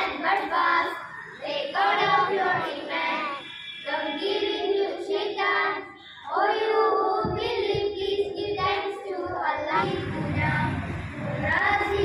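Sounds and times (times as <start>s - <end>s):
young voices singing: 0.0s - 12.0s
low rumble: 9.8s - 12.0s.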